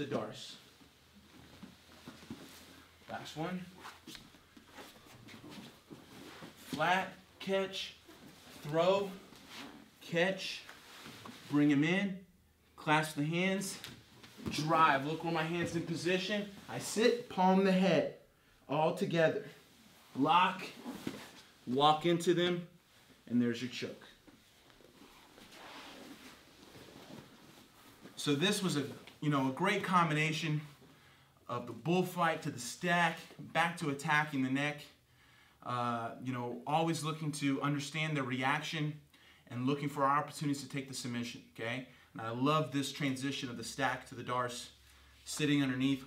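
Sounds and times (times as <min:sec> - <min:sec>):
shuffling on a foam mat: 0:00.8 - 0:07.2, 0:07.8 - 0:09.9, 0:19.5 - 0:21.6, 0:24.3 - 0:29.0.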